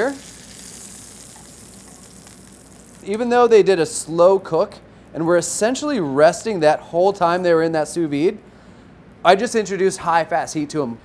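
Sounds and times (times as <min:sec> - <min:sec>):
meat sizzling in a pan: 0:00.0 - 0:03.0.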